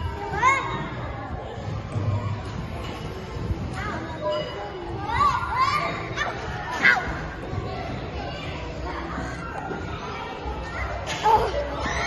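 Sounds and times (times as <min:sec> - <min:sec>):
children's indistinct voices: 0:00.0 - 0:12.0.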